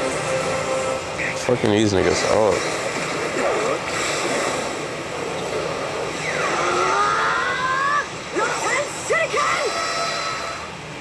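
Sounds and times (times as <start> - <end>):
rushing roar of effects: 0.0 - 10.9
long pitched cry sliding upward: 6.2 - 8.1.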